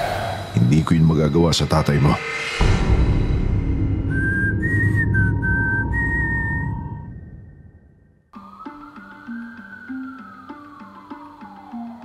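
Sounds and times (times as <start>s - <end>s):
low rumbling drone: 0.0s - 8.2s
eerie whistled tune: 0.0s - 12.0s.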